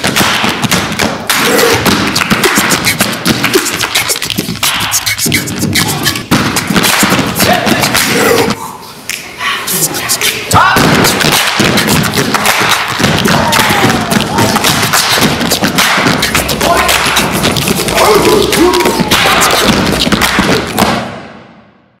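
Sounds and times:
stomping and clapping rhythm: 0.0s - 21.8s
people shouting: 1.3s - 1.9s, 7.4s - 8.7s, 9.4s - 11.2s, 13.0s - 15.3s, 16.4s - 20.1s.

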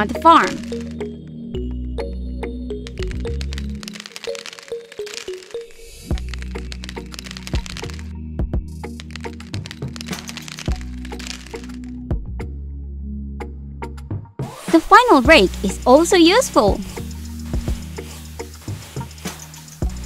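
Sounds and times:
background music: 0.0s - 20.0s
seeds clicking on soil: 0.1s - 1.0s, 2.8s - 8.1s, 8.7s - 11.9s, 15.5s - 20.0s.

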